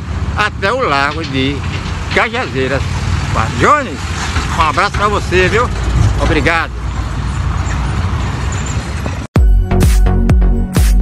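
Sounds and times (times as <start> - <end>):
road traffic rumble: 0.0 - 9.3.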